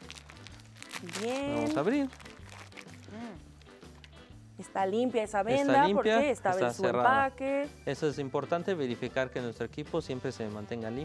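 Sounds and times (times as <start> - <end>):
packaging crinkling: 0.0 - 4.2.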